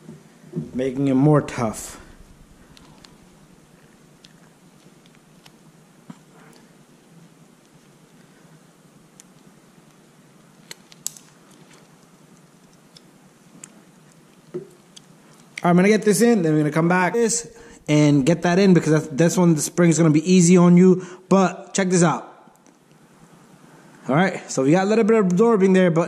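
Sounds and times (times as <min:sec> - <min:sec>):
steady low hum: 0:00.0 - 0:25.3.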